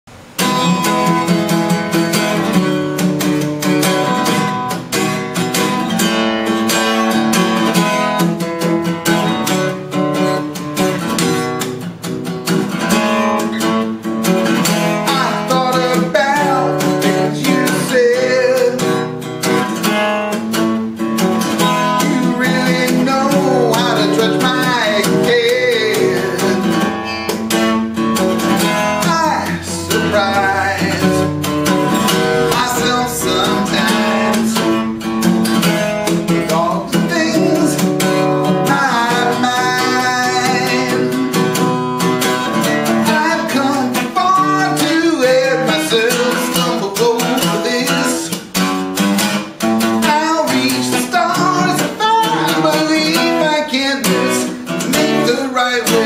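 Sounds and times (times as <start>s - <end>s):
acoustic guitar strumming: 0.1s - 56.0s
man singing: 14.6s - 19.1s, 21.5s - 27.8s, 28.4s - 48.6s, 49.6s - 56.0s.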